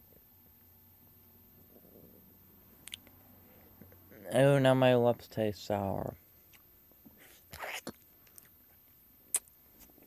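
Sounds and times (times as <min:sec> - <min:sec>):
soft breaths or lip smacks: 0:06.4 - 0:10.0
sharp mouth click: 0:09.3 - 0:09.5.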